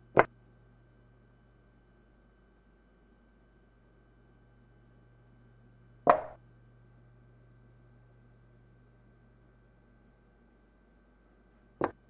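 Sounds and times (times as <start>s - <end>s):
chess piece knocking on board: 6.1s - 6.4s.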